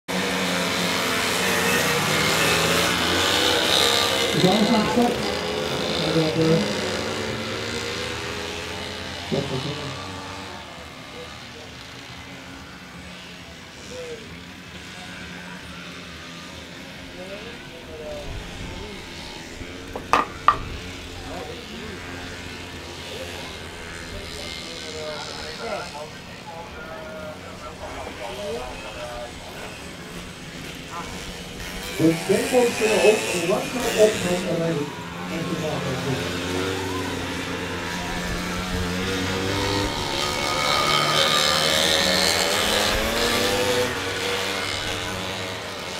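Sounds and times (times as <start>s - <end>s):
racing motorcycle engines revving: 0.1s - 45.9s
voices: 0.2s - 45.9s.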